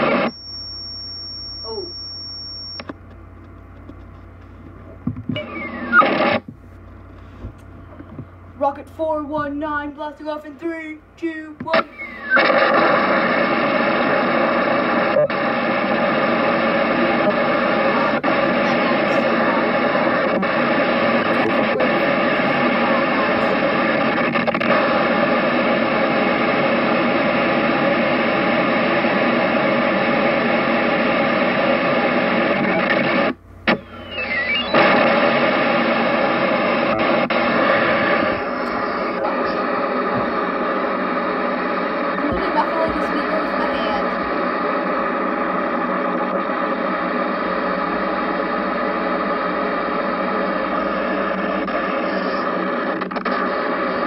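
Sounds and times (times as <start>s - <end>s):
synthetic voice crackling buzz: 1.6s - 2.0s, 14.2s - 24.0s, 36.8s - 40.3s, 42.2s - 44.3s.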